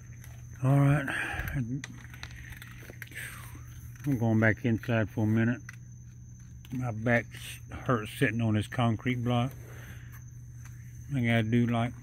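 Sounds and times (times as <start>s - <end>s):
raccoons chewing: 0.0s - 12.0s.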